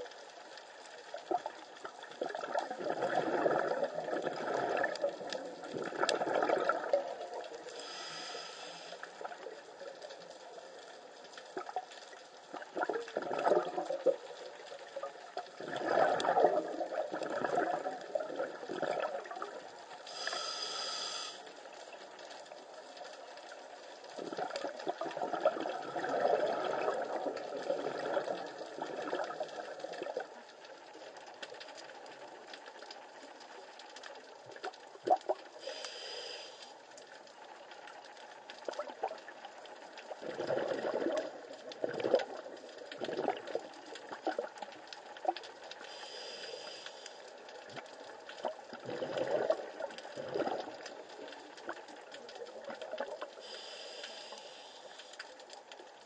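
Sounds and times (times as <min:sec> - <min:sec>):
underwater bubbling exhalations: 0:01.2 - 0:08.0, 0:12.5 - 0:20.9, 0:24.1 - 0:30.4, 0:40.1 - 0:45.5, 0:48.4 - 0:53.5
regulator inhalation hiss: 0:07.7 - 0:09.1, 0:20.1 - 0:21.7, 0:35.6 - 0:36.7, 0:45.9 - 0:47.3, 0:53.4 - 0:55.1.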